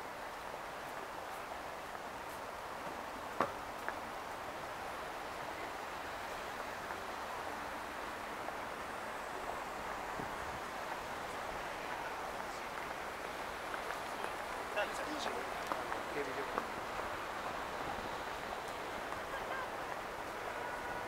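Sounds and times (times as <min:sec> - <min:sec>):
city background noise: 0:00.0 - 0:21.0.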